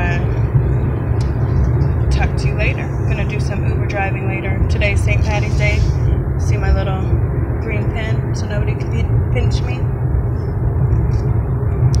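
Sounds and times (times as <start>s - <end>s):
car road and engine rumble: 0.0s - 12.0s
person speaking: 4.7s - 6.1s.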